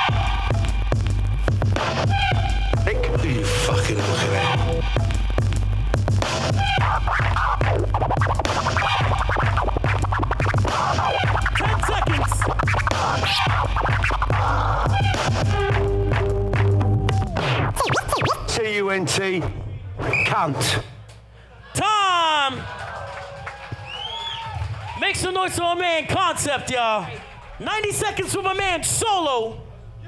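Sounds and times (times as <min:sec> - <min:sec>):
hip-hop beat: 0:00.0 - 0:18.5
bass line: 0:00.0 - 0:18.6
record scratching: 0:02.8 - 0:05.4, 0:06.2 - 0:19.2.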